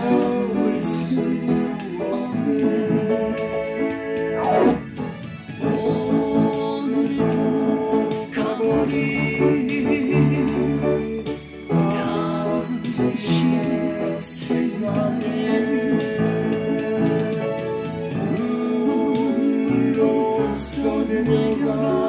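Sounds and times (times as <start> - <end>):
guitar: 0.0 - 22.0
person singing: 0.0 - 22.0
upright piano: 0.0 - 22.0.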